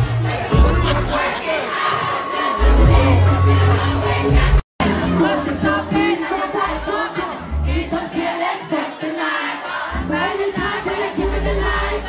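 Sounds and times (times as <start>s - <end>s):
music bass: 0.0s - 1.3s, 2.6s - 7.9s, 10.0s - 12.0s
concert crowd singing along: 0.0s - 12.0s.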